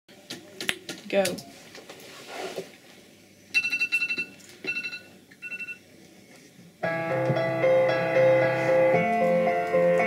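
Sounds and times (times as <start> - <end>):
electronic alarm beeping: 3.6 - 5.8.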